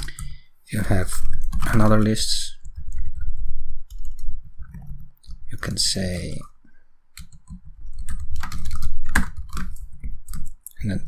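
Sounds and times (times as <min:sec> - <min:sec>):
computer keyboard typing: 0:00.0 - 0:06.5, 0:07.2 - 0:10.8.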